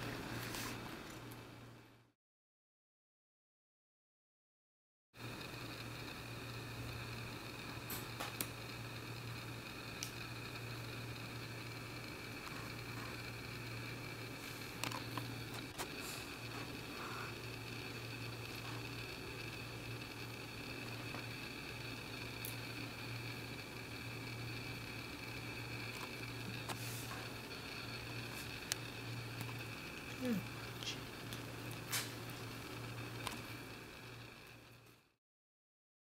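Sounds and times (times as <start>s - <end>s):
faint steady hum: 5.2s - 35.2s.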